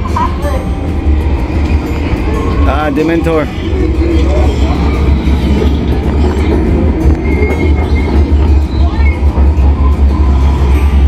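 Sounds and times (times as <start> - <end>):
faint voices: 0.0 - 11.0
train carriage rumble over loudspeakers: 0.0 - 11.0.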